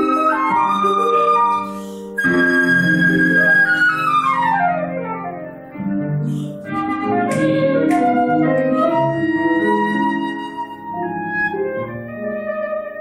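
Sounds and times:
concert flute playing: 0.0s - 13.0s.

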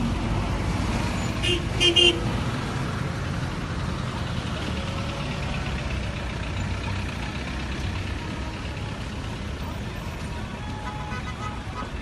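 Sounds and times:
vehicle engines rumbling past: 0.0s - 12.0s.

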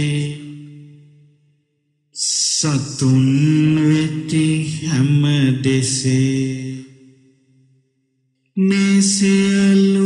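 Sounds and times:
man chanting: 0.0s - 1.2s, 2.2s - 7.1s, 8.6s - 10.0s.

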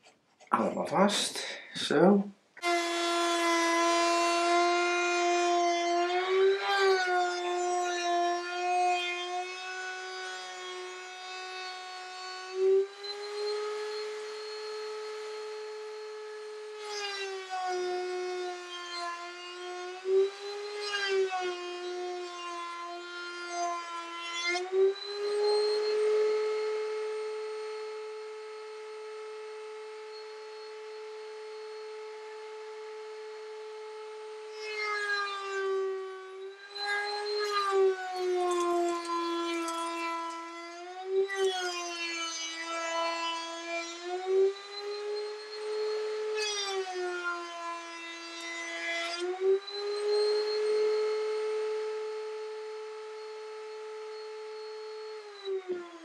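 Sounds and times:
router high whine: 0.6s - 56.0s
rasping wood cutting: 36.8s - 43.5s.

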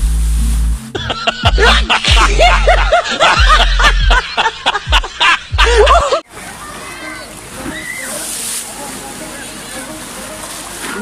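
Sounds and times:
people laughing: 1.0s - 6.2s.

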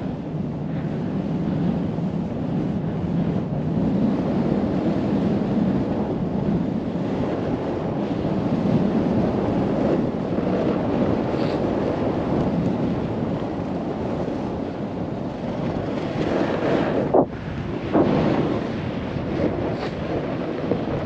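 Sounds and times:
wind rushing over microphone: 0.0s - 21.0s
snowboard scraping on snow: 11.2s - 12.1s, 16.0s - 20.4s.

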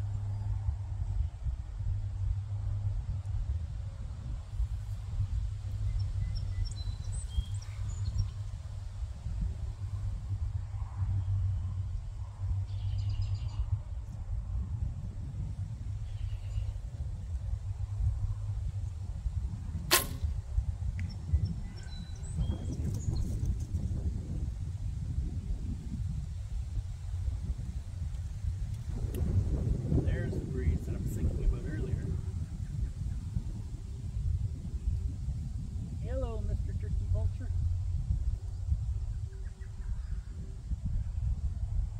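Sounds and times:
wind rumble on microphone: 0.0s - 41.9s
bowstring snap: 19.9s - 20.4s.

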